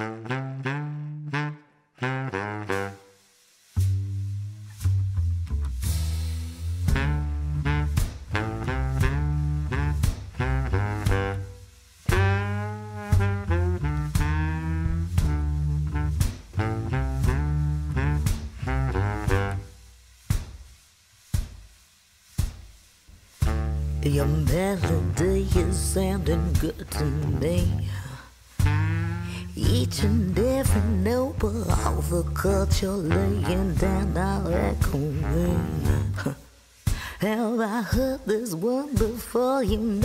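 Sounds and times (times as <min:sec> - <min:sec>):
instrumental band music: 0:00.0 - 0:36.3.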